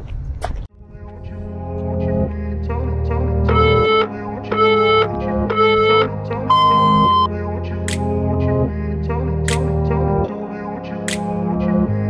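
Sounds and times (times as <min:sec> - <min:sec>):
background music: 0:00.7 - 0:12.0
electronic countdown beeps: 0:03.5 - 0:07.3.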